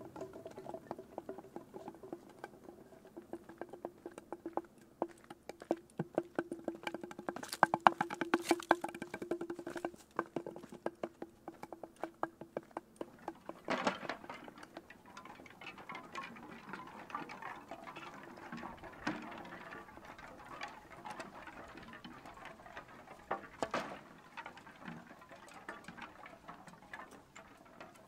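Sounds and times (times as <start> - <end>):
irregular clicks and taps: 0.1 - 28.0.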